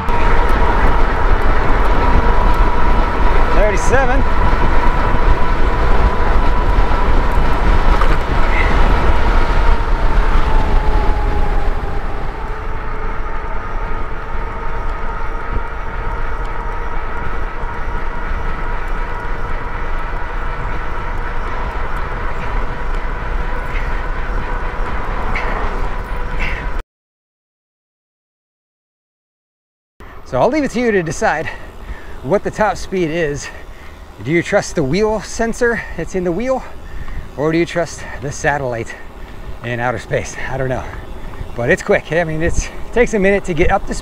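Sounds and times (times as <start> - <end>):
electric motor whine: 0.0 - 26.4
tires on pavement: 0.0 - 26.8, 30.0 - 44.0
wind rushing over microphone: 0.0 - 26.8, 30.0 - 44.0.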